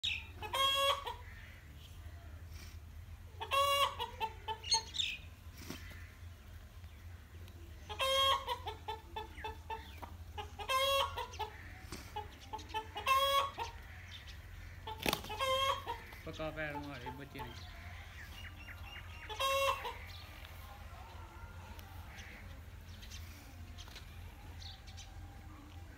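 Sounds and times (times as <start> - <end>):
chickens squawking: 0.0 - 25.3
chickens clucking: 0.0 - 25.9.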